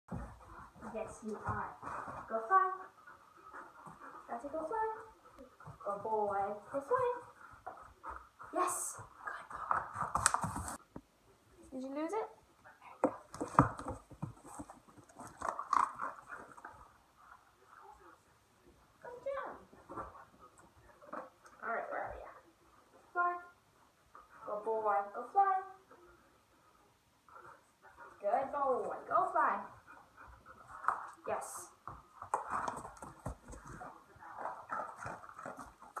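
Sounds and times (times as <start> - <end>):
dog chewing and crunching: 13.2 - 16.9, 32.3 - 36.0.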